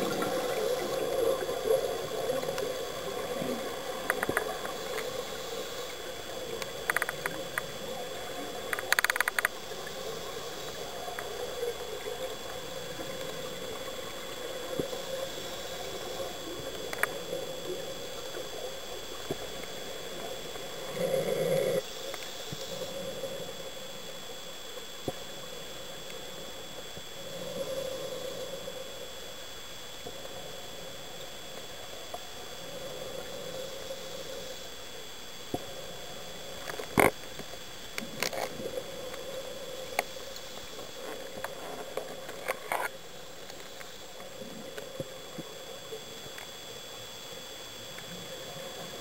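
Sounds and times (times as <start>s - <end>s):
diver exhaling bubbles underwater: 0.0s - 4.7s
faint steady whine: 0.0s - 49.0s.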